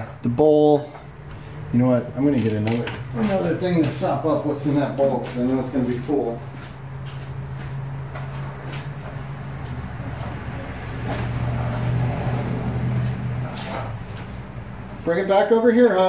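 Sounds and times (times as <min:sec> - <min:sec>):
low motor hum: 0:01.0 - 0:15.1.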